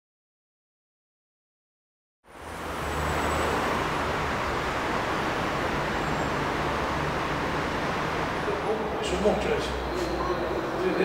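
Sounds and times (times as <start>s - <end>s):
street traffic hum: 2.2s - 11.0s.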